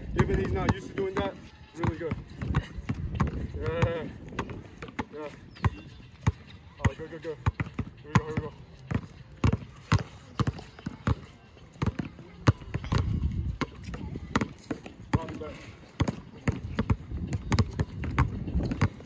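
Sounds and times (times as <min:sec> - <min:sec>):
basketballs bouncing on bricks: 0:00.0 - 0:19.0.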